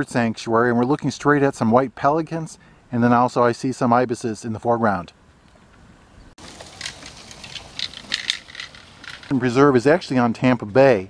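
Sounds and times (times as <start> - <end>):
bicycle tyres crunching on gravel: 6.4 - 9.3
light clinks: 6.6 - 9.3.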